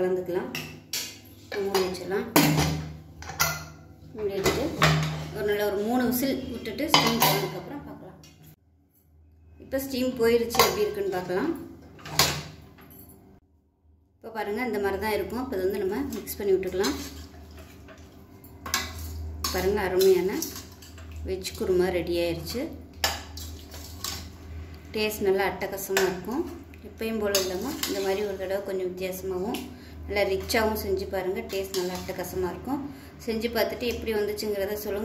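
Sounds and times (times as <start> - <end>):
ladle scraping metal pot: 16.1 - 21.2, 23.0 - 24.4, 27.3 - 28.5
ladle stirring thick gravy: 16.8 - 19.7, 23.1 - 24.4.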